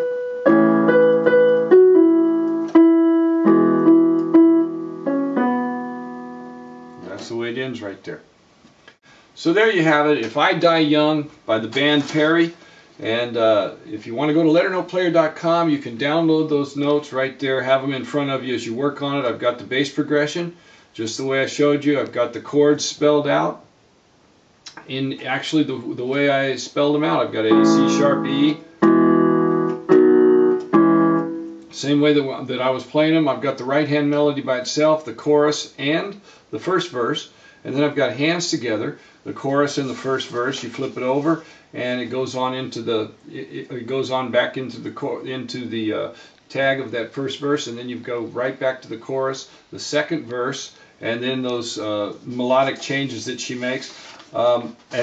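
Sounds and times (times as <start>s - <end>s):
electronic keyboard piano melody: 0.0s - 7.2s, 27.5s - 31.8s.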